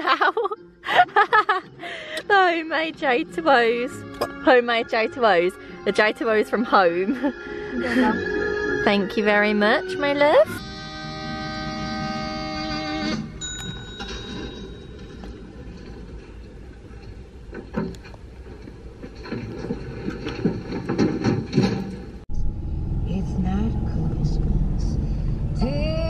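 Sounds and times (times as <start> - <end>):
soft music: 0.0 - 15.3, 22.4 - 26.0
held musical chord: 2.3 - 13.5
voices: 7.8 - 10.6
low rumble: 22.2 - 26.0.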